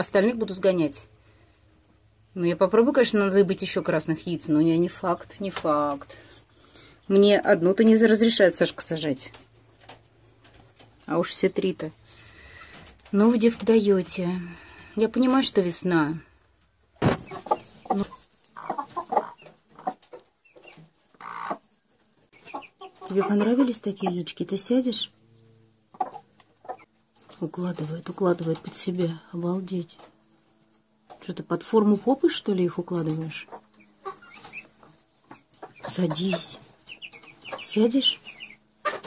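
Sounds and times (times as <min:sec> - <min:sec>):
hen clucking: 0:17.0 - 0:21.7, 0:22.3 - 0:25.1, 0:25.8 - 0:26.9, 0:31.7 - 0:39.0.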